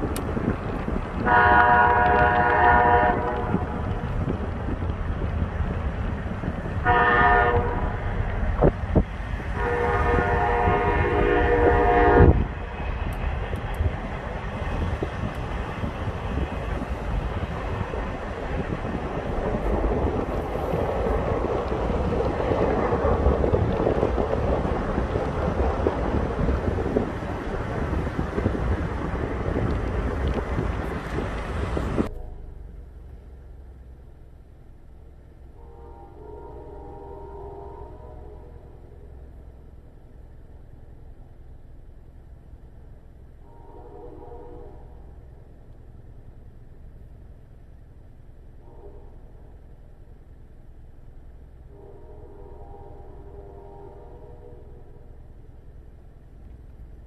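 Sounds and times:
low train rumble: 0.0s - 57.0s
locomotive air horn blasts: 1.2s - 3.8s, 6.8s - 8.0s, 9.5s - 12.5s, 32.0s - 32.7s, 35.5s - 39.2s, 43.4s - 45.2s, 48.6s - 49.6s, 51.7s - 55.2s.

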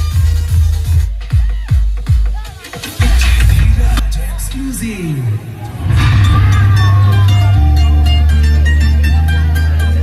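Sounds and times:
heavy bass kick: 0.0s - 4.9s, 5.8s - 10.0s
electronic dance music: 0.0s - 10.0s.

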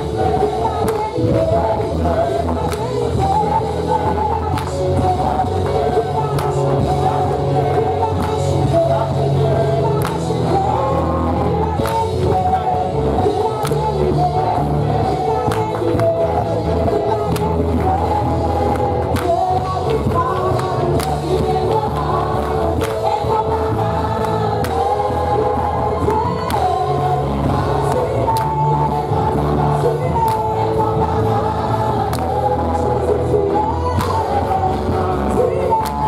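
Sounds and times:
group singing gospel music: 0.0s - 36.0s
heavy bass: 0.0s - 36.0s
hand clapping: 2.6s - 3.0s, 4.4s - 4.8s, 6.2s - 6.7s, 8.1s - 8.4s, 9.9s - 10.3s, 11.8s - 12.4s, 13.3s - 14.0s, 15.4s - 16.2s, 17.3s - 17.9s, 18.7s - 23.2s, 28.3s - 28.6s, 32.1s - 32.3s.

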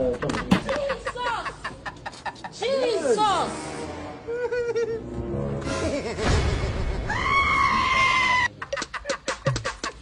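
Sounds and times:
rhythmic drum beat: 8.7s - 10.0s.

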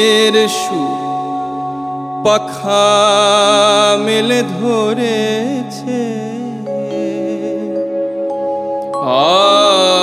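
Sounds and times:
man singing devotional song: 0.0s - 8.0s, 9.0s - 10.0s
held instrumental chords: 0.0s - 10.0s.

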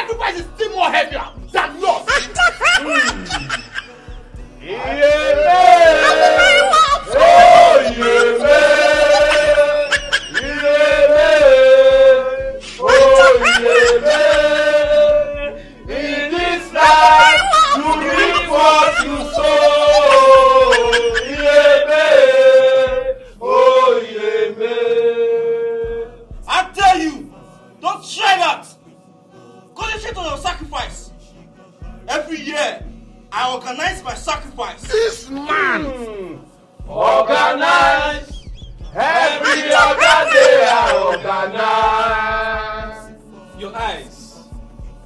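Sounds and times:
men chanting: 0.0s - 45.0s
laughter: 2.0s - 4.2s, 5.8s - 11.0s, 12.8s - 14.6s, 16.8s - 21.8s, 38.4s - 41.4s.

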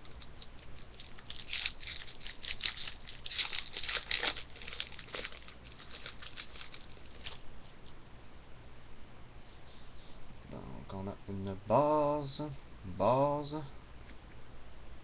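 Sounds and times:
card pack wrapper crinkling: 0.0s - 7.4s.

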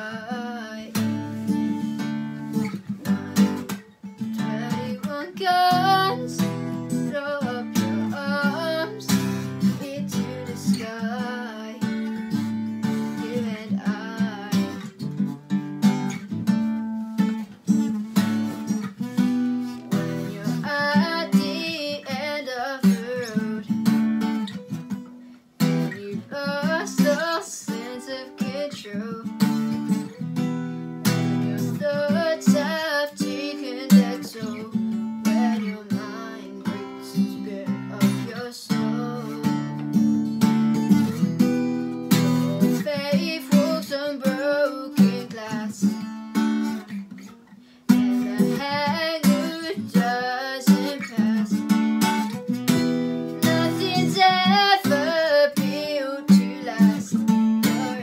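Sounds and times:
woman singing: 0.0s - 15.4s, 18.2s - 24.6s, 25.6s - 30.2s, 31.0s - 40.2s, 42.0s - 46.9s, 47.9s - 58.0s
acoustic guitar strumming chords: 0.0s - 58.0s.

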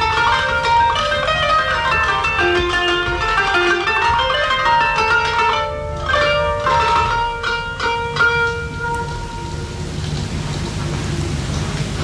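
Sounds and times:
plucked kanun note: 0.0s - 11.5s
record surface hiss and crackle: 0.0s - 12.0s.

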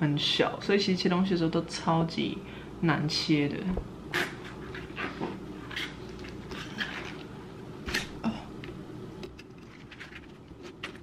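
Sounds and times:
knife cutting watermelon rind: 4.1s - 8.2s.

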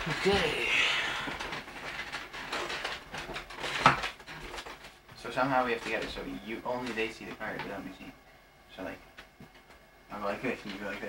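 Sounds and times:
playing cards clicking and rustling: 0.0s - 7.8s.

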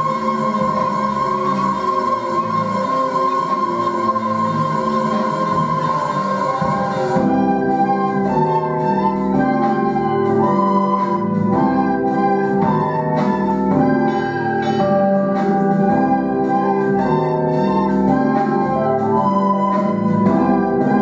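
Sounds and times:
children playing recorders: 0.0s - 21.0s
organ-like accompaniment: 0.0s - 21.0s.

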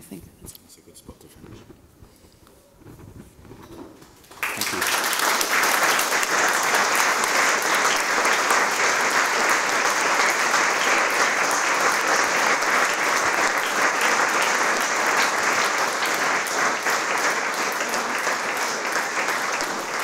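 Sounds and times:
audience applauding: 4.0s - 20.0s.

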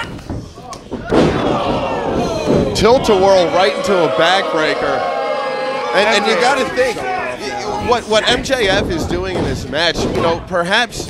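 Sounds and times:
body slamming onto ring: 1.0s - 3.2s.

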